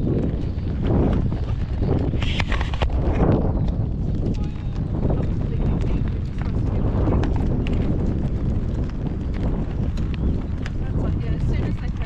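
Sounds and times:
horse hooves clopping on gravel: 0.0 - 12.0
wind buffeting a microphone: 0.0 - 12.0.

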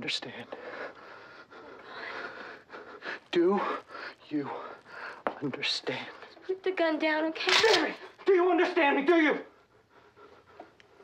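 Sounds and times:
person breathing hard and fast: 0.5 - 5.4, 9.6 - 11.0.

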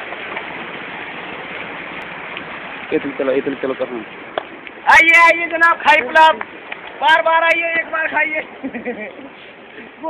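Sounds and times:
fast-flowing stream rushing: 0.0 - 10.0.

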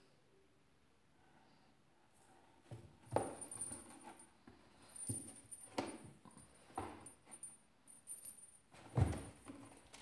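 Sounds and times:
faint metallic jingle: 3.0 - 10.0.

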